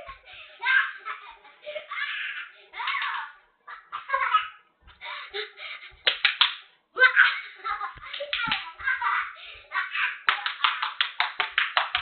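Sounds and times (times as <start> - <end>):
man clapping hands fast: 6.0 - 6.7, 8.0 - 8.7, 10.2 - 12.0.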